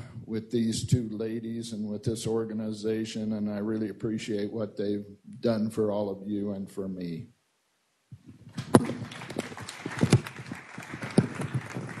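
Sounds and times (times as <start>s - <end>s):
small audience applauding: 8.5s - 12.0s.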